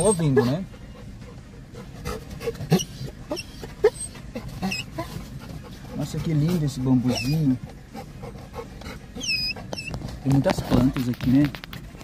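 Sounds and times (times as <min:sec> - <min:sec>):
car rumble: 0:00.0 - 0:12.0
dog excited cries: 0:02.4 - 0:07.6, 0:09.1 - 0:10.2.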